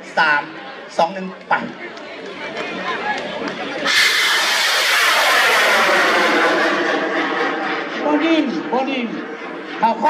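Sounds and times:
rocket motor rushing hiss: 3.8 - 7.3.

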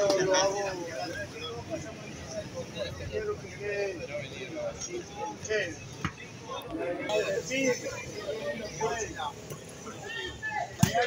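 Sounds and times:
onlookers chattering: 0.0 - 11.0.

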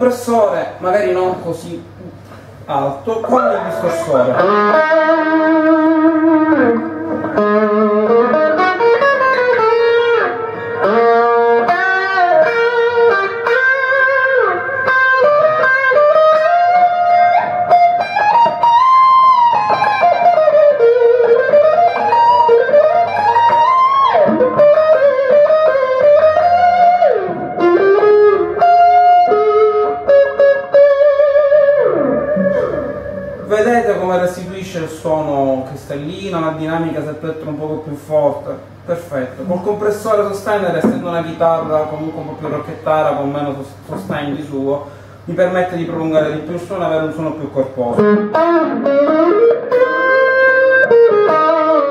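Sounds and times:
distorted electric guitar lead: 3.2 - 34.0, 47.9 - 51.9.

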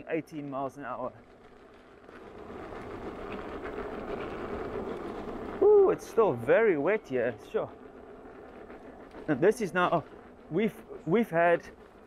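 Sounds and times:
rushing of tyre and air: 1.1 - 12.0.

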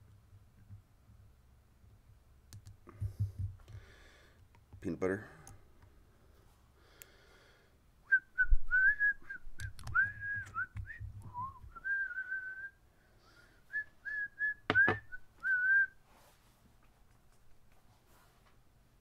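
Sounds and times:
man whistling a tune: 8.0 - 12.8, 13.7 - 16.0.

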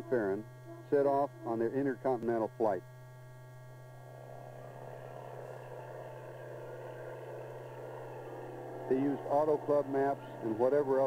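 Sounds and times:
low mains hum: 0.0 - 11.0
propeller aircraft engine drone: 0.0 - 11.0.

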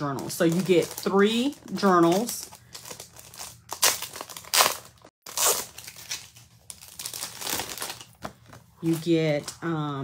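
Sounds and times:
paper crinkling and rustling: 0.0 - 9.8.

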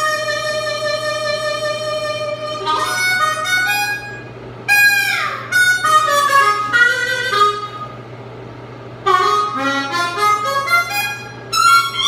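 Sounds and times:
blues harmonica playing: 0.0 - 8.0, 9.0 - 12.0.

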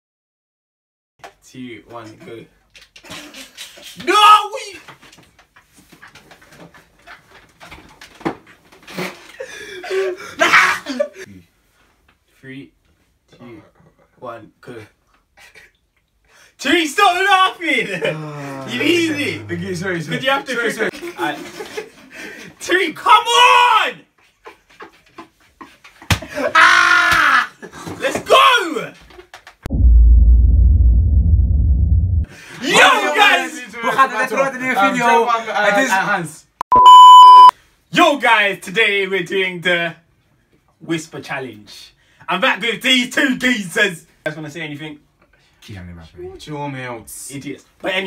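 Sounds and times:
people laughing and giggling: 17.8 - 22.6
young man shouting: 18.6 - 20.1, 23.0 - 24.0.

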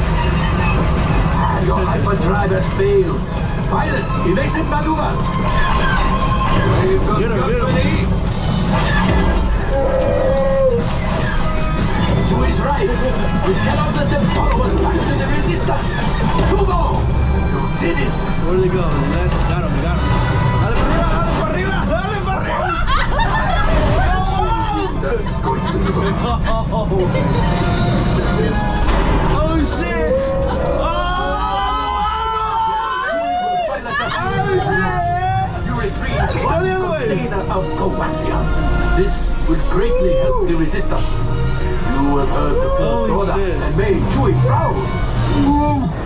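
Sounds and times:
deep rumble: 0.0 - 32.2, 34.2 - 46.0
music: 0.0 - 46.0.

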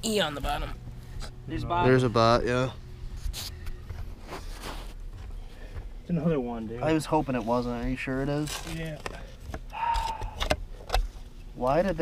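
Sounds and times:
low steady rumble: 0.0 - 12.0.

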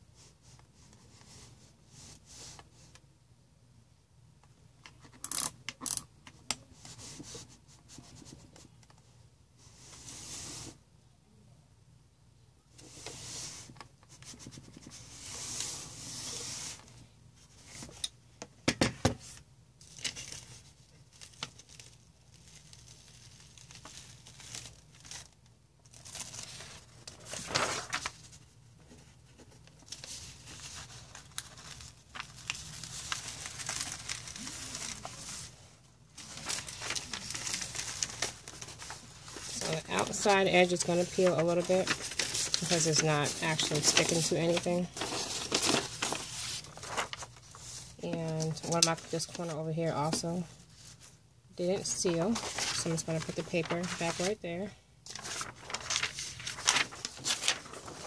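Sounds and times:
paper and plastic wrap rustling: 19.2 - 58.0.

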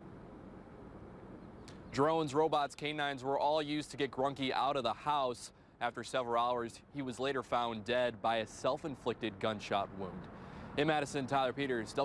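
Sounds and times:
distant traffic hum: 0.0 - 12.0
short intake of breath: 10.3 - 10.8.

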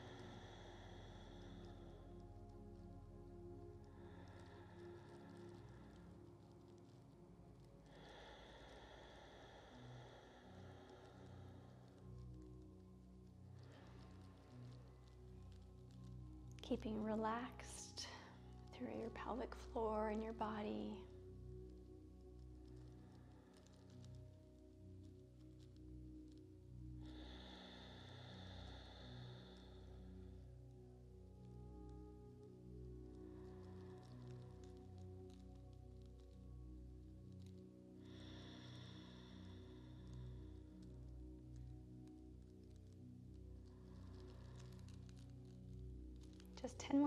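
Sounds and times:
soft sustained chords music: 0.0 - 47.0.

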